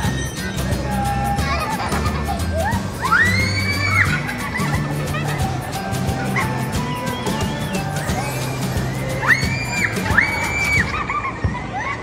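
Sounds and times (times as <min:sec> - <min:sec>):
music with steady beat: 0:00.0 - 0:10.9
child squealing: 0:00.0 - 0:12.0
child screaming: 0:03.0 - 0:04.2, 0:08.1 - 0:11.2.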